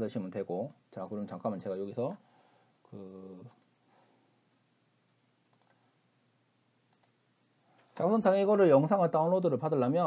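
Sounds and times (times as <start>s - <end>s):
faint computer mouse clicks: 3.5s - 3.8s, 5.5s - 5.8s, 6.9s - 7.2s.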